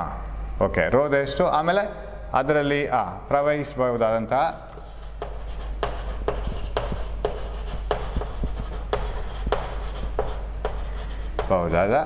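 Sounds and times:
chalk tapping and scratching on blackboard: 0:04.4 - 0:12.0.

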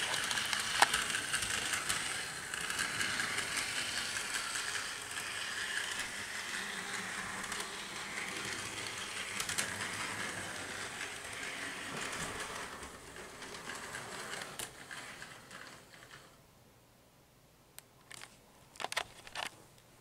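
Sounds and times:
toy train motor whirring: 0:00.0 - 0:16.4
wheels rattling on rails: 0:00.0 - 0:16.4.

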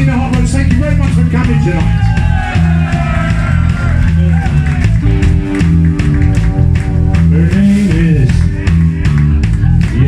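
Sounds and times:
punk rock band playing: 0:00.0 - 0:10.0.

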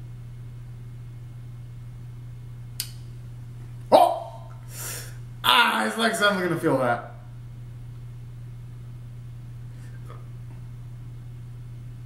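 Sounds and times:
steady low hum: 0:00.0 - 0:12.0
brief click: 0:02.8 - 0:03.0
man exclaiming in surprise: 0:03.9 - 0:04.5, 0:05.4 - 0:06.9.

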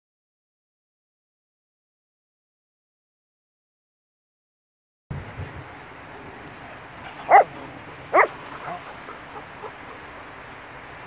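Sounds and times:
dog barking: 0:07.1 - 0:09.8.

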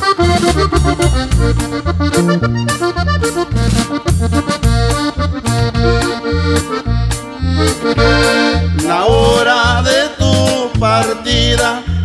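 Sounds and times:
accordion playing lead: 0:00.0 - 0:12.0
pulsing bass: 0:00.0 - 0:12.0
person singing: 0:08.8 - 0:12.0.

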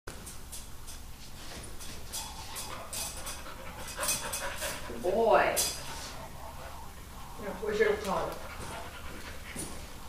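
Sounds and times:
dog panting: 0:02.3 - 0:10.0.

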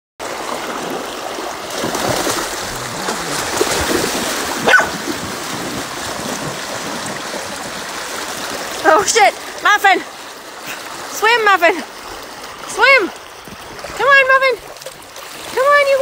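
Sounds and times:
dog splashing through water: 0:00.2 - 0:09.7, 0:12.6 - 0:16.0
river rushing over rapids: 0:01.4 - 0:11.5
dog yelp: 0:04.6 - 0:05.0.

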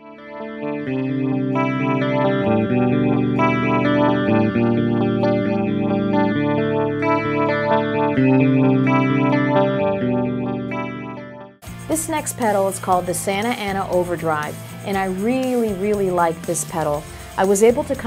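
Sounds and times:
electric guitar with delay: 0:00.0 - 0:18.0.

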